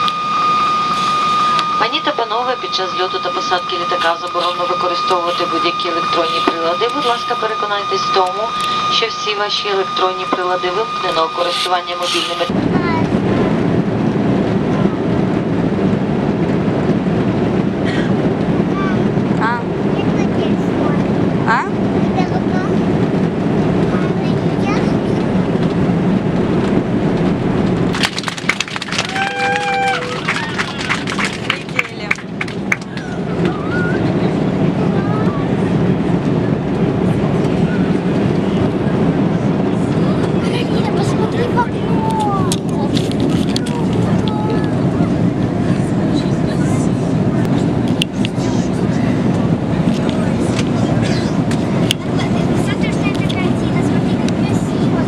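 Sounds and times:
aircraft cabin drone: 0:00.0 - 0:55.0
murmur of voices: 0:01.4 - 0:15.6, 0:17.8 - 0:55.0.

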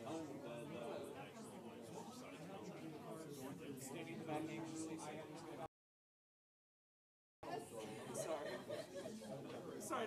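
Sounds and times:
indistinct chatter: 0:00.0 - 0:05.7.

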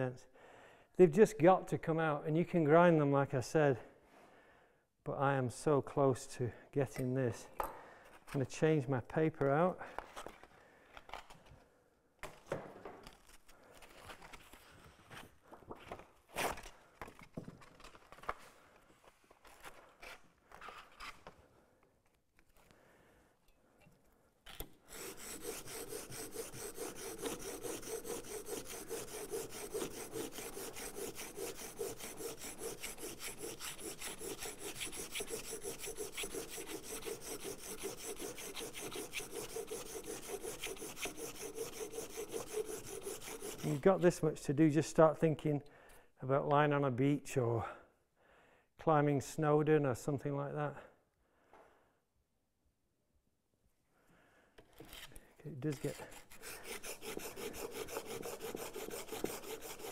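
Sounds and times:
plane iron grinding on abrasive paper: 0:24.9 - 0:44.0, 0:55.8 - 0:59.9.

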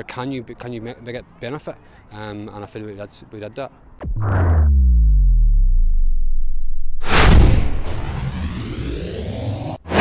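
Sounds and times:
rising sweep: 0:04.0 - 0:09.8
whoosh with deep low tone: 0:04.0 - 0:09.8
loud whoosh: 0:04.0 - 0:10.0.

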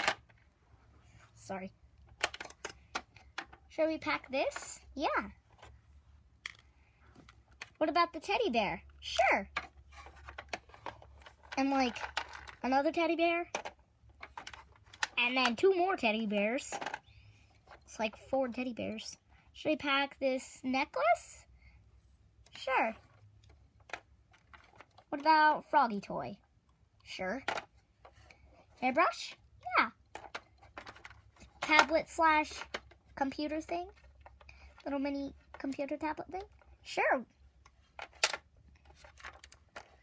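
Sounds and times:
plastic toys handled: 0:00.0 - 0:19.4, 0:22.3 - 0:25.7, 0:26.3 - 0:40.0
plastic toy figures clicking: 0:02.0 - 0:03.7, 0:09.1 - 0:12.8, 0:13.5 - 0:15.8.

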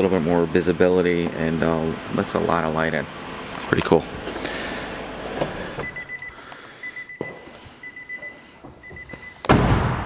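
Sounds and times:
car warning chime beeps: 0:05.6 - 0:09.5.

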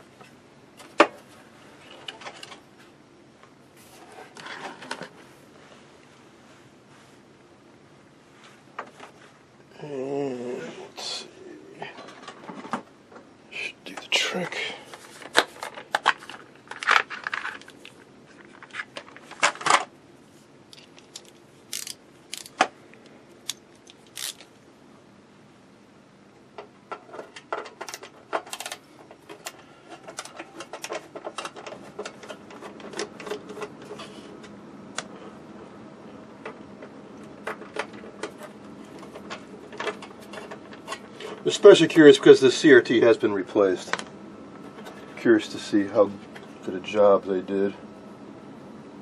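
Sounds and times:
screwdriver clicks and scrapes: 0:20.7 - 0:22.6, 0:23.5 - 0:24.5.

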